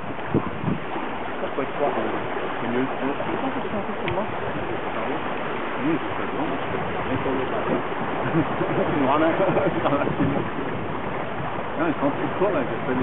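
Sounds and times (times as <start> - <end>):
water rushing: 0.0 - 13.0
wind: 0.0 - 13.0.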